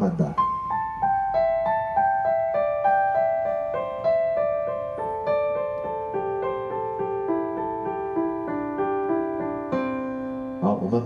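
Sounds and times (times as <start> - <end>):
digital piano single notes: 0.0 - 11.0.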